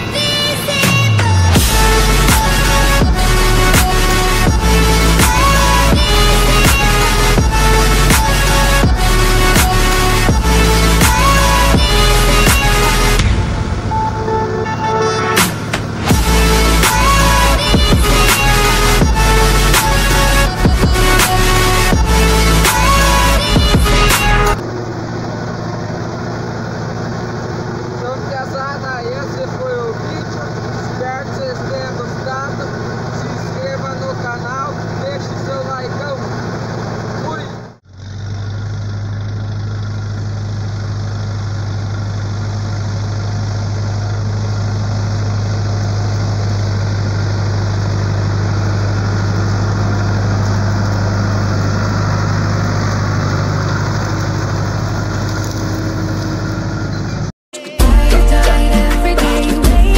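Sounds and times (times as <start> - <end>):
tractor diesel engine running: 0.0 - 59.9.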